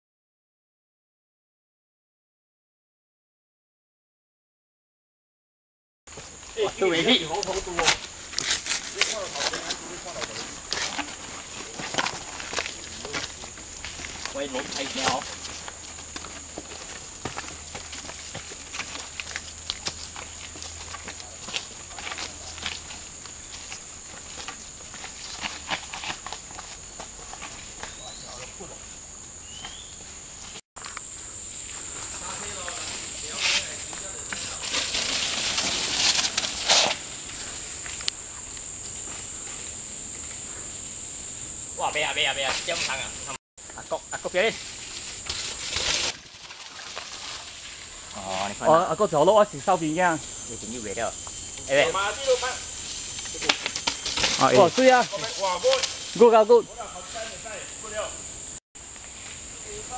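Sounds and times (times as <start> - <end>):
mountain bike rattling on trail: 6.1 - 28.2, 32.1 - 38.0, 43.7 - 59.9
insect drone: 6.1 - 59.9.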